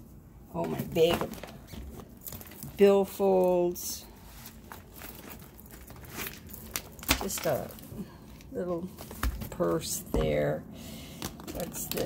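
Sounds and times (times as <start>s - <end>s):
handbags rustling: 0.7s - 9.9s.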